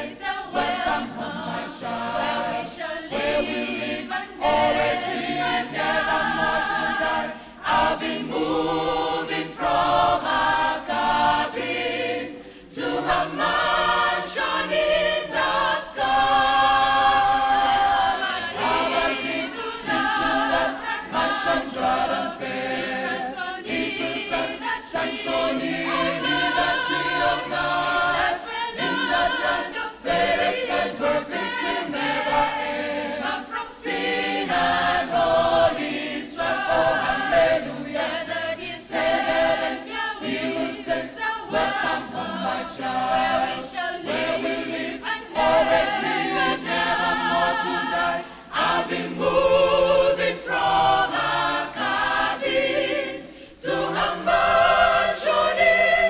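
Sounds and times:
mixed choir singing gospel: 0.0s - 56.0s.

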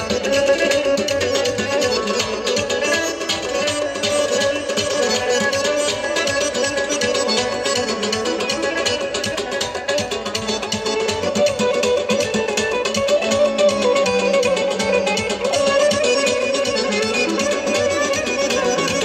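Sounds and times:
plucked-string melody: 0.0s - 19.0s
steady drum beat: 0.0s - 19.0s.

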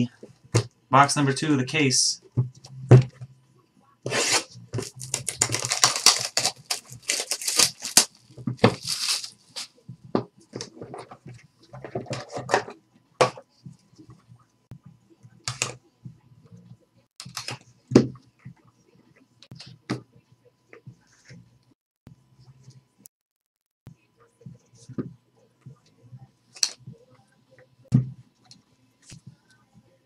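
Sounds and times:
plastic shrink-wrap tearing: 4.1s - 9.7s
box rustling and knocking: 4.8s - 13.4s.

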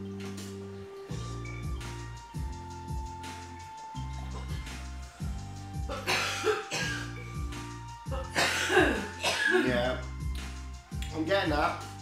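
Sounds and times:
music with repeating bass: 0.0s - 12.0s
man coughing and exhaling: 5.9s - 7.4s, 8.1s - 10.0s.

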